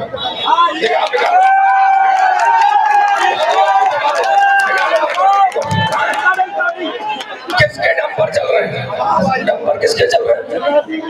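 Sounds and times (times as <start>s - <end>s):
man speaking over public address: 0.0s - 1.4s, 3.2s - 11.0s.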